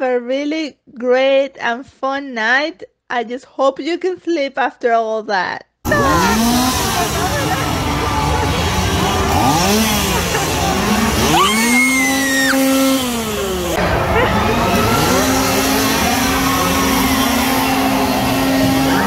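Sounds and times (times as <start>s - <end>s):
chainsaw engine revving: 5.9s - 19.0s.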